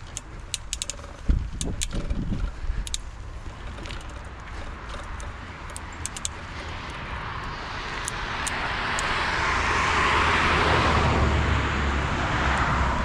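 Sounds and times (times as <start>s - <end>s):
vehicle passing: 0.0s - 13.0s.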